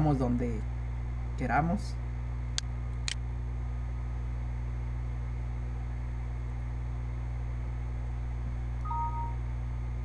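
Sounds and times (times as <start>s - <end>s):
low electrical hum: 0.0s - 10.0s
short electronic beep: 8.8s - 9.4s.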